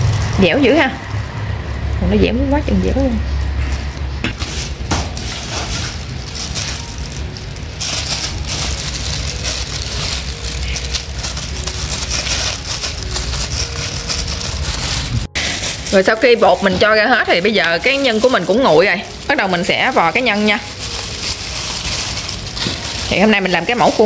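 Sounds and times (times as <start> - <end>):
plastic glove crinkling: 0.0 - 24.0.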